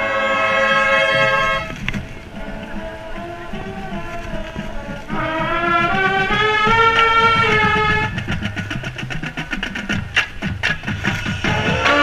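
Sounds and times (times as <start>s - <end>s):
snare drum strokes: 4.0s - 12.0s
bass drum pulses: 4.8s - 12.0s.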